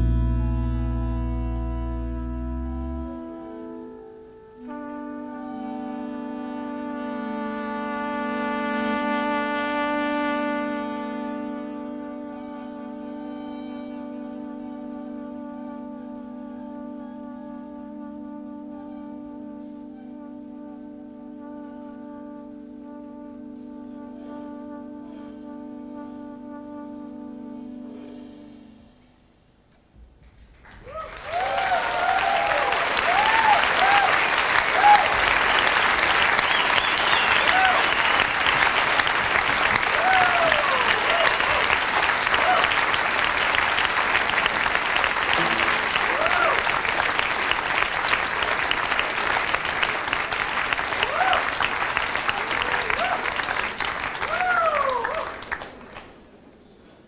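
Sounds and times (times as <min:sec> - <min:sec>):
audience applauding: 0:30.5 - 0:56.2
cheering shouts: 0:30.8 - 0:35.3, 0:36.5 - 0:38.3, 0:39.8 - 0:42.9, 0:45.4 - 0:46.8, 0:51.0 - 0:53.5, 0:54.2 - 0:55.5.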